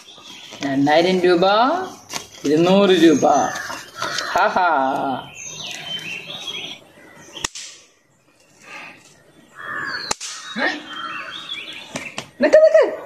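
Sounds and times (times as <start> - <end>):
snap crackers popping: 2.0 - 2.7, 7.4 - 9.2, 10.1 - 10.6, 11.9 - 12.4.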